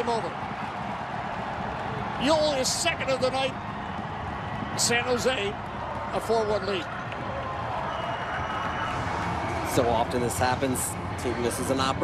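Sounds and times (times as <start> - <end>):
stadium crowd cheering and applauding: 0.0 - 12.0.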